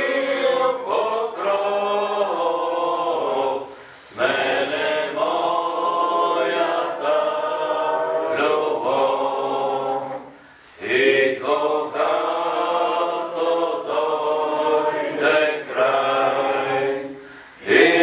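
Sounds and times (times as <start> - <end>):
group singing a hymn: 0.0 - 18.0.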